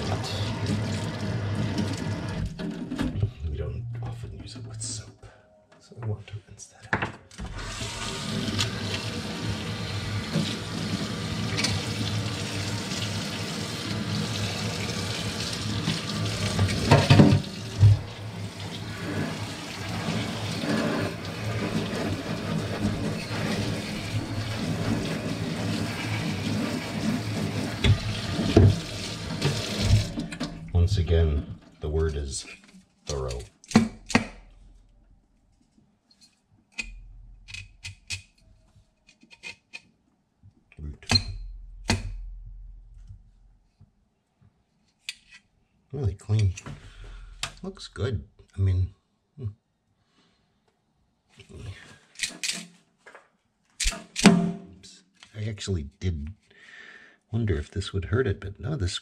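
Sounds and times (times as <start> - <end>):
metal sprouter rinsed and rubbed: 7.6 - 30.8
tap running into metal sink: 15.9 - 18.1, 27.8 - 30.7
metal knocks: 54.2 - 54.8.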